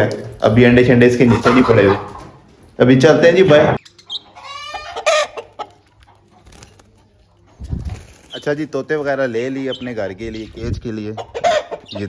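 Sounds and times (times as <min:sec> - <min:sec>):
chicken calling: 0:03.8 - 0:06.2, 0:09.2 - 0:12.0.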